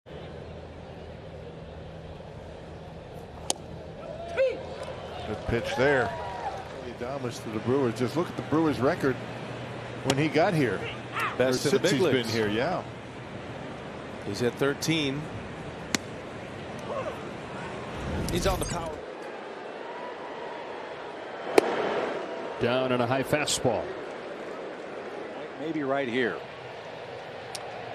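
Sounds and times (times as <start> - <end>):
ballpark crowd murmur: 0.1 - 18.0, 19.0 - 27.9
low hum: 15.2 - 19.4
crowd murmur: 15.3 - 18.2, 23.7 - 27.9.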